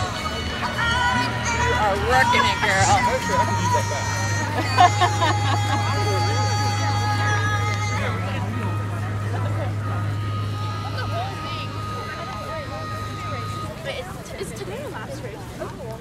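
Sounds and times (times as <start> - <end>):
spectators chattering: 0.0 - 16.0.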